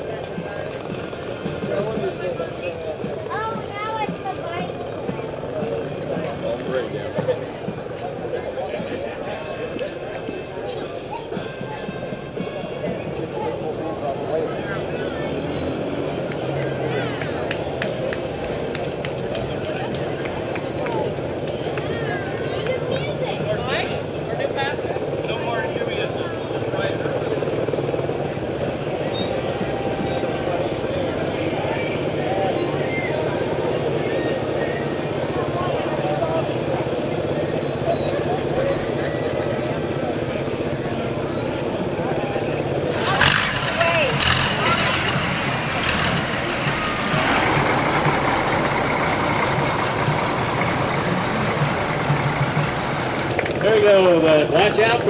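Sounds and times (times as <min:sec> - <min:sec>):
motor scooters running: 0:00.0 - 0:55.0
voices: 0:00.0 - 0:55.0
sharp cracks: 0:42.9 - 0:48.1.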